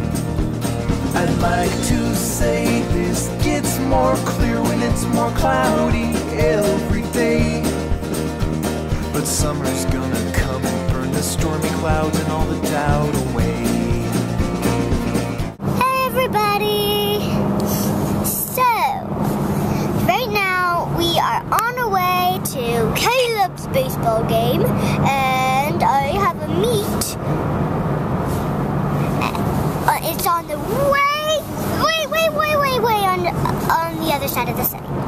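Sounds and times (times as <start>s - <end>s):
pop song singing: 0.0s - 15.5s
child talking and exclaiming: 15.7s - 17.5s, 18.2s - 27.2s, 29.1s - 35.0s.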